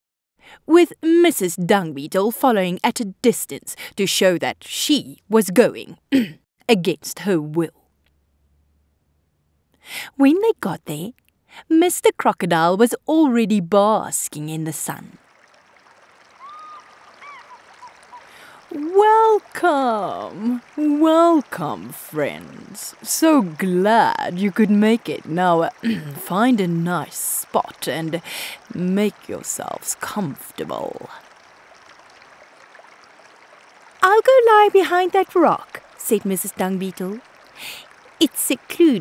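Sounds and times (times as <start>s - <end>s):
running water: 13.1s - 39.0s
bird chirps: 16.3s - 18.8s.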